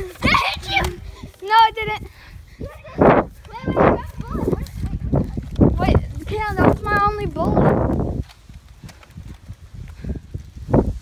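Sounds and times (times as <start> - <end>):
children calling and shouting: 0.0 - 8.2
footsteps on grass: 0.0 - 11.0.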